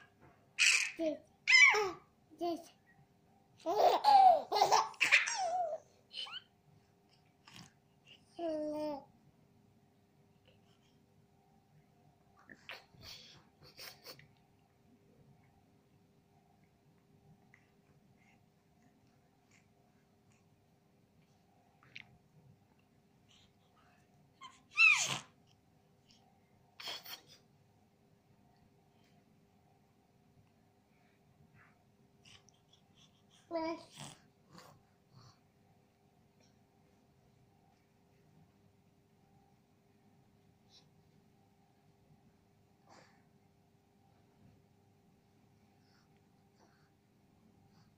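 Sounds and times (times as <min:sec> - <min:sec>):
baby squealing: 0:00.6 - 0:02.0, 0:24.4 - 0:25.3
baby laughing and babbling: 0:00.6 - 0:02.8, 0:03.6 - 0:06.5, 0:07.4 - 0:09.1, 0:24.4 - 0:25.4, 0:26.8 - 0:27.4, 0:32.3 - 0:34.2.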